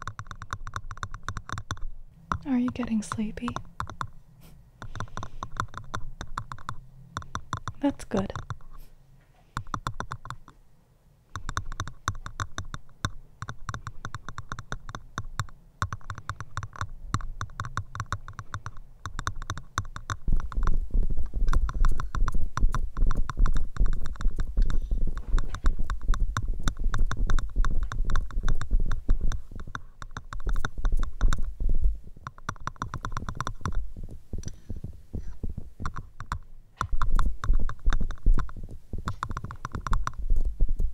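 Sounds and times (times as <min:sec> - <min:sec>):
crackling against microphone: 0:11.4 - 0:40.9
heavy low rumble: 0:30.7 - 0:32.2.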